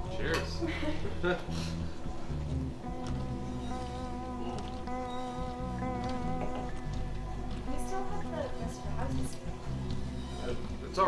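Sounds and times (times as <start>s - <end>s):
low bass notes: 0.0s - 11.0s
buzzing drone: 1.1s - 11.0s.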